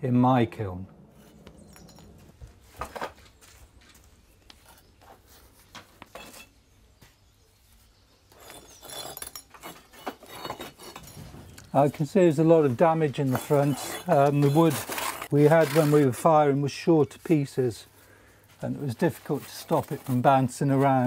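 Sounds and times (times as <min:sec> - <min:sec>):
ceramic pieces clinking: 0:01.5 - 0:02.2.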